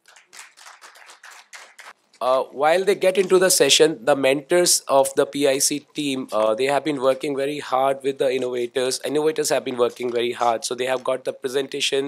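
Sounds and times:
light applause: 0.0s - 2.0s.

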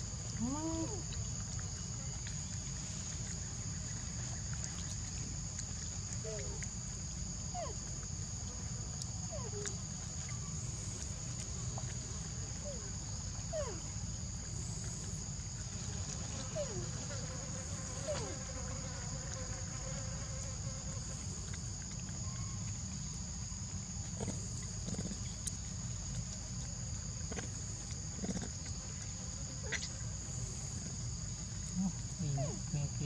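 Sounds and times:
insects droning: 0.0s - 33.0s.

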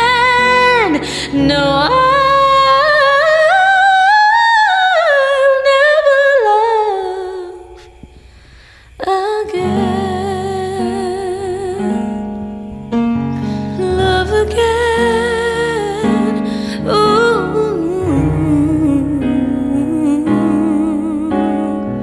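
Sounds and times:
woman singing a ballad: 0.0s - 12.7s, 13.4s - 22.0s
electronic keyboard accompaniment: 0.0s - 22.0s.

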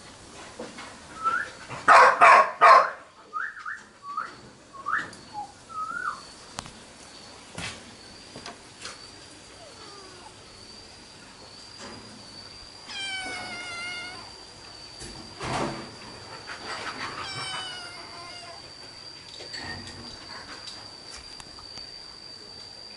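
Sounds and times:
kittens meowing: 9.5s - 10.7s, 12.8s - 14.4s, 17.1s - 18.7s.

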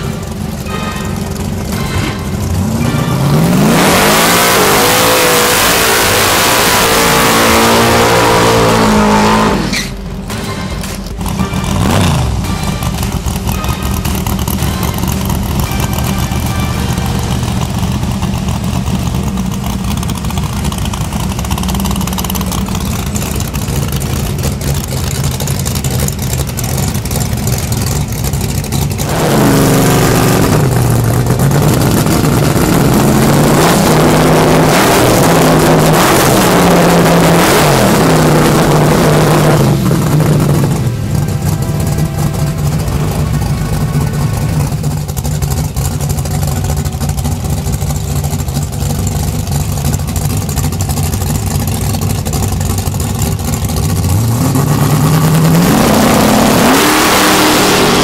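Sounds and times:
car engine revving: 0.0s - 58.0s
tyres screeching in burnout: 8.6s - 10.2s.

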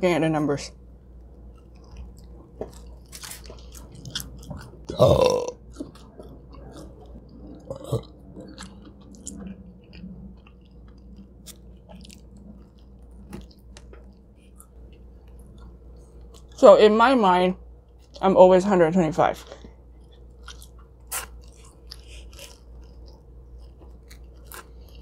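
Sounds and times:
biting and chewing pizza: 1.3s - 16.6s, 19.4s - 25.0s
throaty sound: 3.4s - 9.5s.

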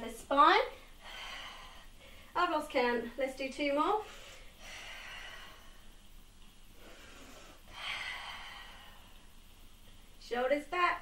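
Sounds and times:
woman breathing hard: 0.8s - 2.4s, 4.0s - 6.1s, 6.7s - 9.4s.

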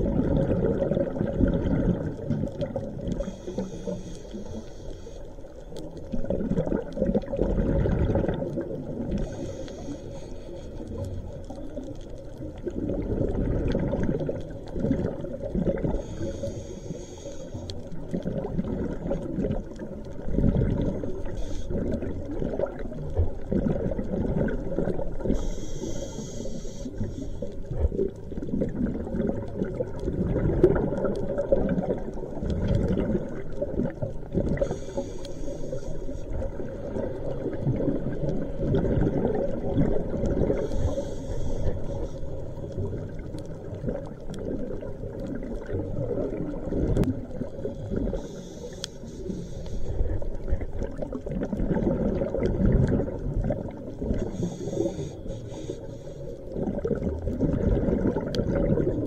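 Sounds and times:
gurgle of exhaled bubbles: 0.0s - 4.6s, 5.8s - 9.9s, 10.8s - 16.6s, 17.8s - 55.6s, 56.4s - 59.0s
hissing regulator inhale: 3.1s - 5.8s, 9.1s - 11.4s, 15.8s - 18.2s, 21.1s - 22.2s, 25.2s - 27.7s, 34.6s - 37.3s, 40.3s - 42.8s, 47.7s - 50.5s, 54.1s - 56.6s.

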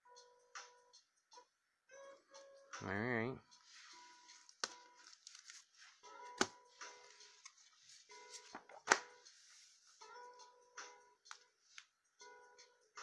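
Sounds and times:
faint background music: 0.0s - 13.0s.

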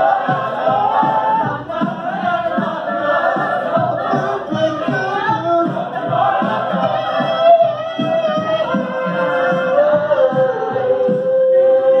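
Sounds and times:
a cappella group singing: 0.0s - 12.0s.

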